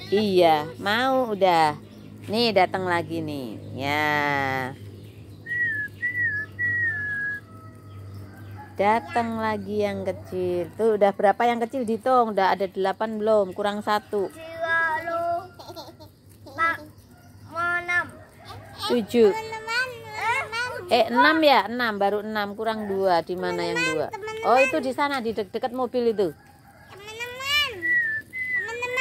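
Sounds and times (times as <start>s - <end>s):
child calling out: 0.0s - 0.4s, 14.4s - 15.9s, 17.5s - 21.3s, 23.5s - 24.9s, 26.9s - 27.9s, 28.6s - 29.0s
child speaking: 0.0s - 1.8s, 14.2s - 21.6s, 23.4s - 25.1s, 26.9s - 27.9s, 28.6s - 29.0s.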